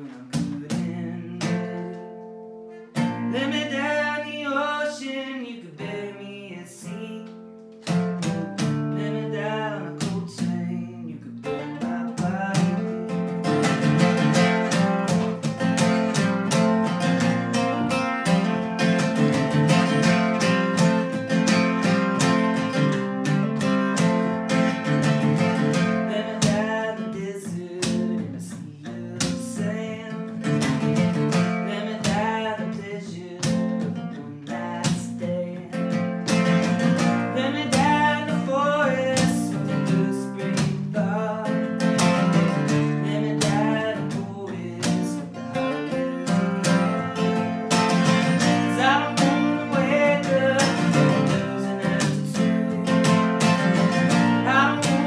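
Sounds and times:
acoustic guitar strummed: 0:00.0 - 0:55.0.

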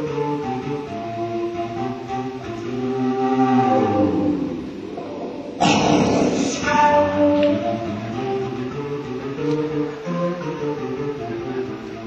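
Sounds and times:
flute: 0:00.0 - 0:12.0
layered tones sliding down: 0:02.6 - 0:07.2.

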